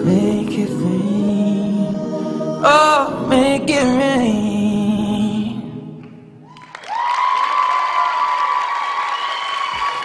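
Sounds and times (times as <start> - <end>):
audience applauding and cheering: 6.4 - 10.0.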